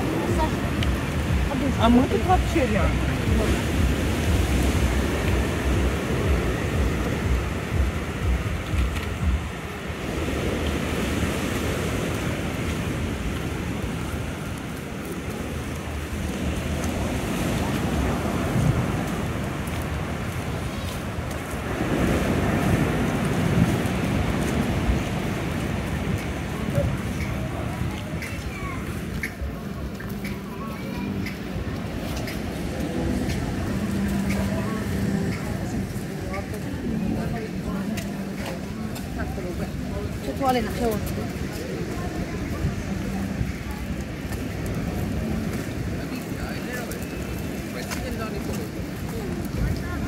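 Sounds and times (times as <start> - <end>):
faint voices: 0.0 - 50.0
outdoor noise: 0.0 - 50.0
wind buffeting microphone: 0.0 - 50.0.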